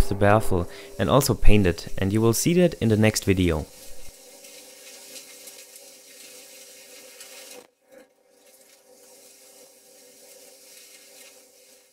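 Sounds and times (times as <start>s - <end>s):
rushing air: 0.0s - 2.4s.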